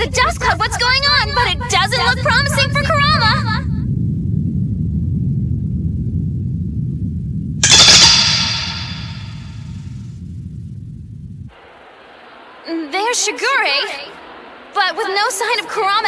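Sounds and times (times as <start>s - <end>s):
metallic blade swish: 7.6s - 9.6s.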